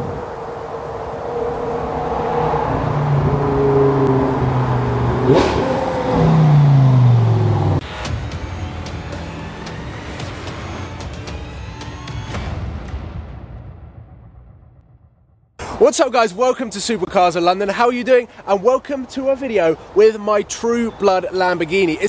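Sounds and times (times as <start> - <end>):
car engine accelerating hard: 0.0 - 7.8.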